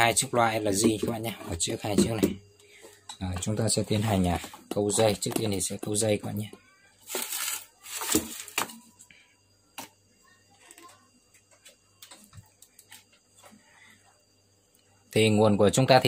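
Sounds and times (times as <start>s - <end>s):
scraping and rustling: 7.0s - 8.8s.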